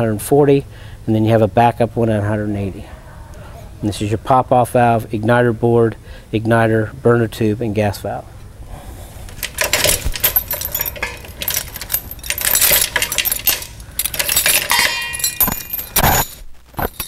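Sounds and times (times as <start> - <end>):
metal chains rattling: 9.3 - 17.0.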